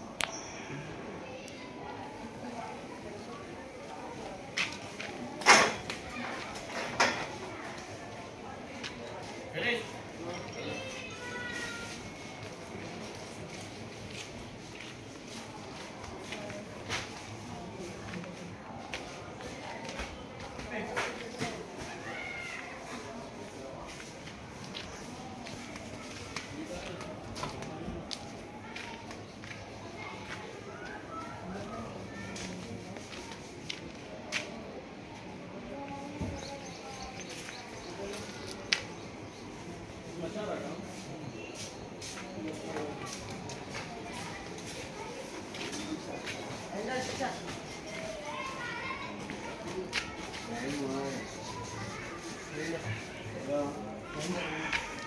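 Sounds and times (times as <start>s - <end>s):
people talking indistinctly: 15.9s - 55.0s.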